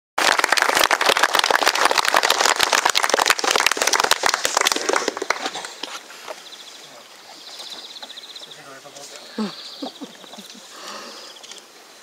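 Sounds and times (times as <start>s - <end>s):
audience applauding: 0.2s - 6.0s.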